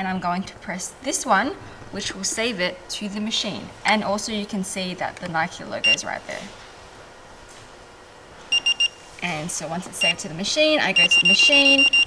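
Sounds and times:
short high-pitched beeps: 8.5 - 9.0, 11.0 - 12.0.

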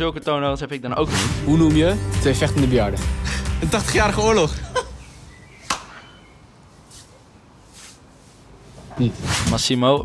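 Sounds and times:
sharp hand clap: 5.7 - 6.0.

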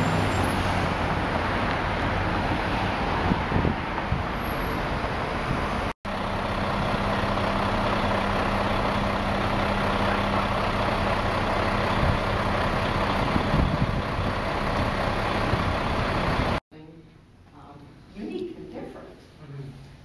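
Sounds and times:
street traffic: 0.0 - 16.6
vehicle engine idling: 6.1 - 16.6.

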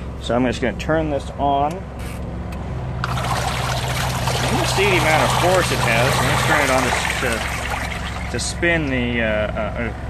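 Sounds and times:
agitator sloshing water: 3.0 - 9.1
washing machine motor hum: 3.0 - 10.0.

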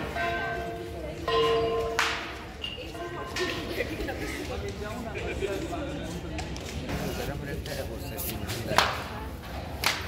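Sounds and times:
low background murmur: 0.0 - 10.0.

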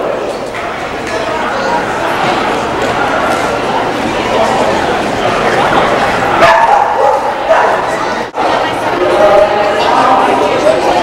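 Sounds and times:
crowd chatter: 0.0 - 11.0
dog barking: 6.4 - 7.9.

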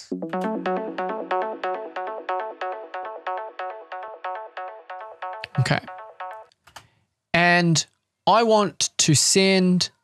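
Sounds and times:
synthesizer plucked arpeggio: 0.0 - 6.5.

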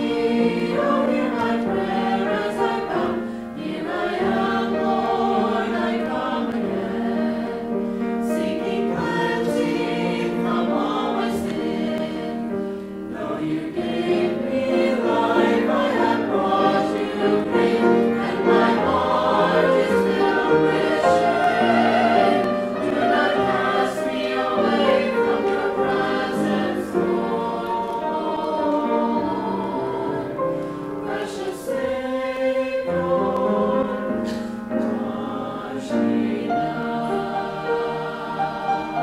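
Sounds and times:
choir singing a hymn: 0.0 - 39.0.

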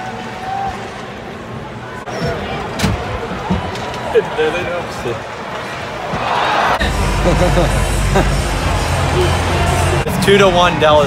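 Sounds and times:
indistinct crowd voices: 0.0 - 11.0
crowd shouts: 5.2 - 11.0.

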